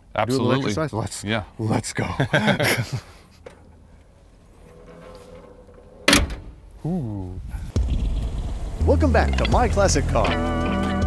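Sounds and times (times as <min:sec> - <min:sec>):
car door shutting: 0:05.4 - 0:06.7.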